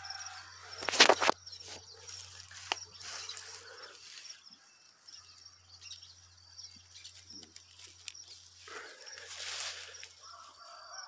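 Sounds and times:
small birds chirping: 0:00.0 - 0:11.0
rustle: 0:06.9 - 0:10.9.

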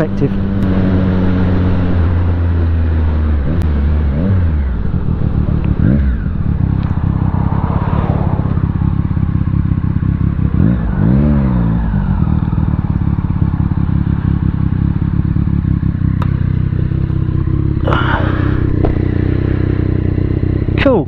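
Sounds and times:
motorcycle engine running: 0:00.0 - 0:21.0.

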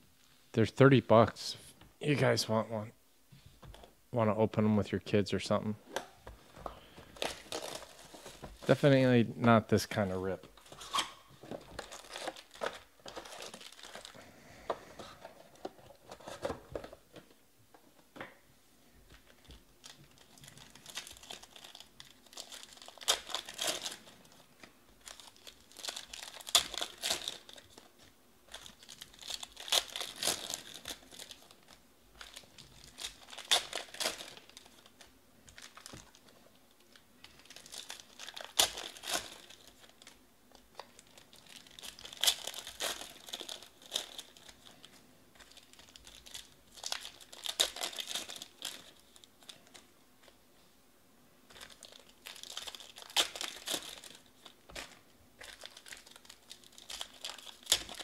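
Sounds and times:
foil wrappers ripping and crinkling: 0:06.8 - 0:08.8, 0:10.6 - 0:14.4, 0:19.3 - 0:50.4, 0:51.5 - 0:58.0.

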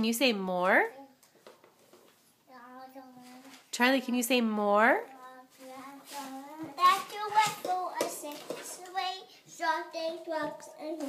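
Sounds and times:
child singing and babbling: 0:02.5 - 0:03.6, 0:05.1 - 0:11.0.

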